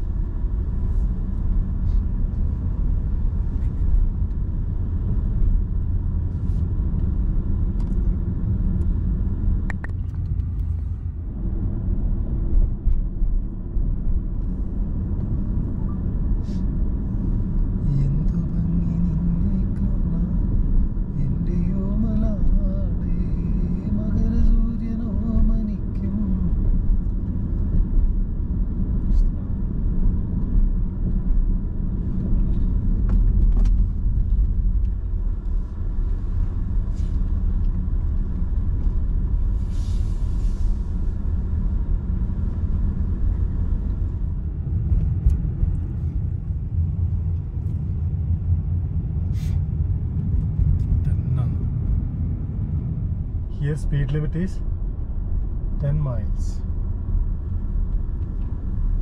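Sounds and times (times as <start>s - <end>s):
car engine and tyres rumbling: 0.0s - 59.0s.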